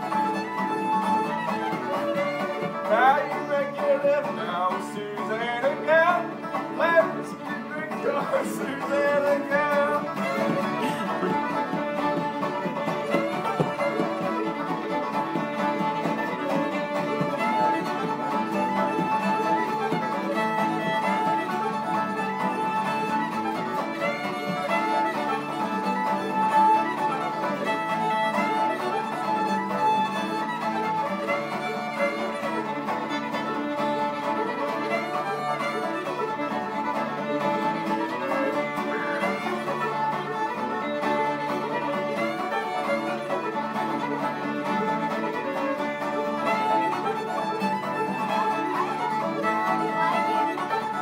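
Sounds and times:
fiddle melody: 0:00.0 - 0:51.0
picked banjo: 0:00.0 - 0:51.0
strummed acoustic guitar: 0:00.0 - 0:51.0.

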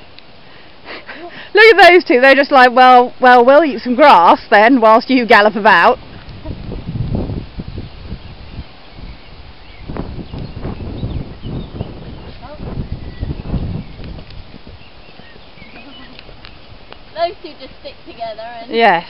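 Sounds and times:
hoofbeats on turf: 0:13.4 - 0:17.6.

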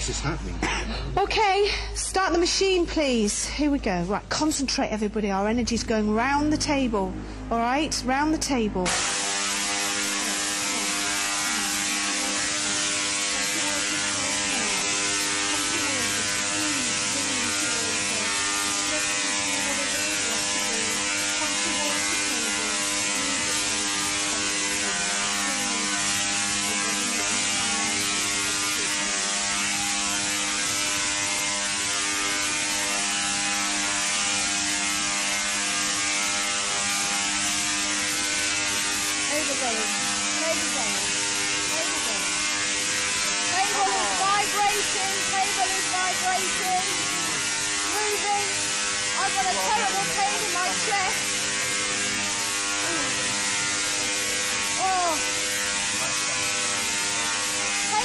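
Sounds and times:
electrical hum: 0:00.0 - 0:58.0
electrical arcs crackling: 0:07.6 - 0:58.0.

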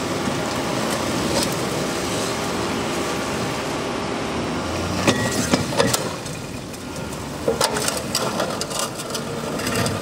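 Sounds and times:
idling vehicle engines: 0:00.0 - 0:10.0.

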